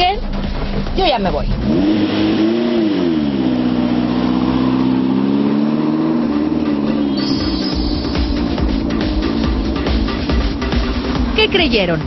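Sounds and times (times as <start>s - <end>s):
music: 0.0s - 3.4s, 6.0s - 12.0s
sports car engine revving: 0.3s - 12.0s.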